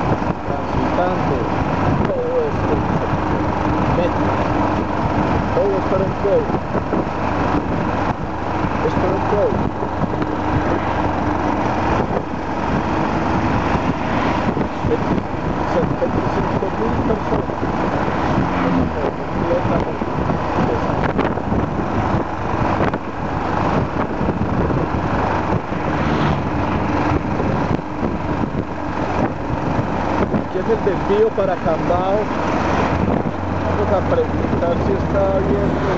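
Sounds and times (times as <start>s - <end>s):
motorcycle engine running: 0.0s - 35.9s
wind rush on microphone: 0.0s - 35.9s.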